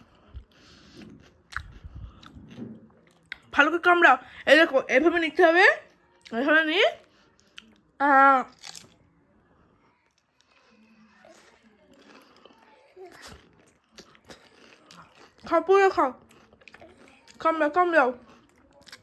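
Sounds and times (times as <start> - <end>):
toddler chewing crunchy snack: 0.0 - 3.5, 8.5 - 9.0, 10.0 - 19.0.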